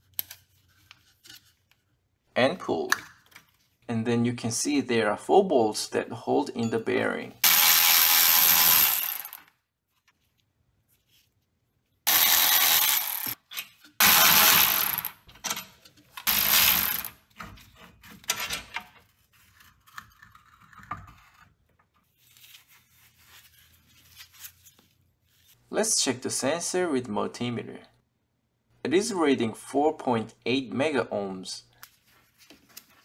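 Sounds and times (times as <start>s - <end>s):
electric ratchet spinning bolts: 7.4s - 9.5s, 12.1s - 13.4s, 14.0s - 15.2s, 16.2s - 17.2s.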